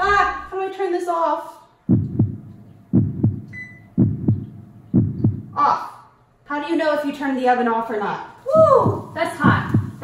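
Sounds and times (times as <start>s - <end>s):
heartbeat double thump: 1.9s - 5.6s, 8.6s - 10.0s.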